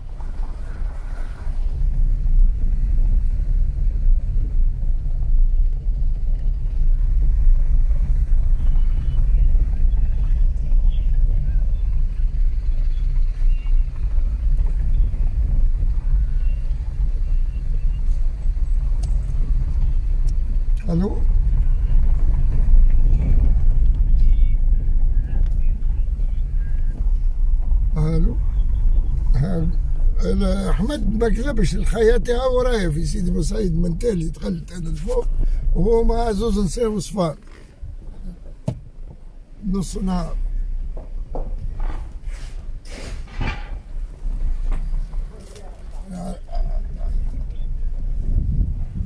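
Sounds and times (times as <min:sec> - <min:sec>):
car interior rumble: 0:00.0 - 0:49.0.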